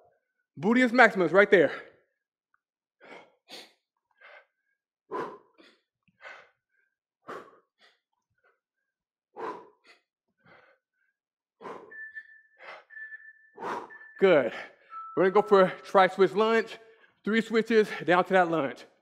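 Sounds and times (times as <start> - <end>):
man breathing hard: 3.0 - 8.1, 9.3 - 14.9
steady high tone: 11.7 - 16.7.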